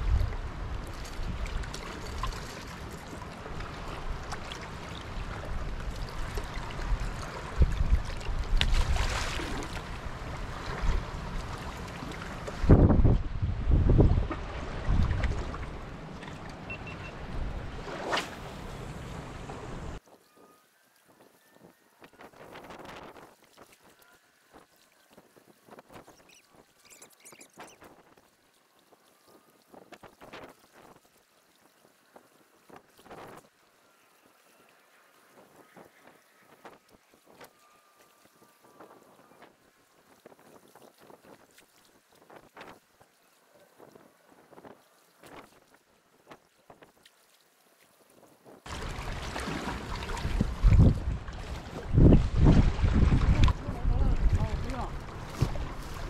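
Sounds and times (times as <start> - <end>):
small waves lapping on rocks: 0.5 - 12.8, 22.8 - 56.0
wind buffeting microphone: 12.3 - 16.0, 48.7 - 56.0.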